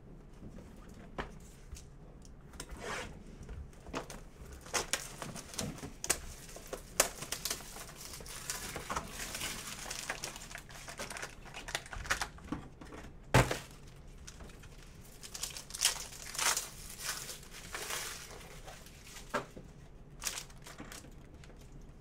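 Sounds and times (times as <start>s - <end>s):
foil packs rustling: 4.0s - 19.6s, 20.2s - 21.8s
plastic shrink-wrap crinkling: 4.4s - 12.5s, 13.4s - 19.5s, 20.2s - 21.9s.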